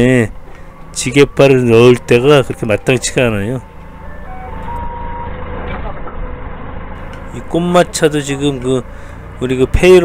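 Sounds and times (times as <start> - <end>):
forklift engine idling: 0.0 - 10.0.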